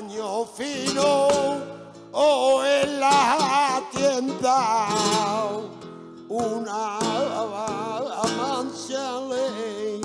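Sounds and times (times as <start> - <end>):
plucked flamenco guitar: 0.0 - 10.0.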